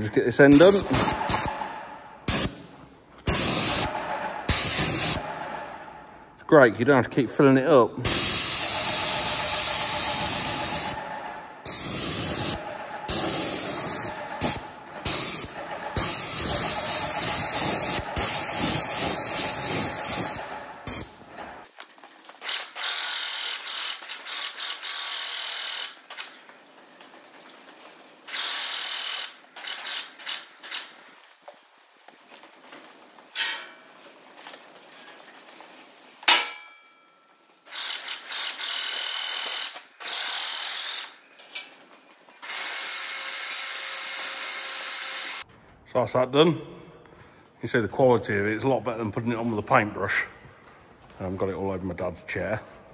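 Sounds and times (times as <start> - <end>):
paint sprayer hissing: 0.5 - 5.5, 8.0 - 21.7.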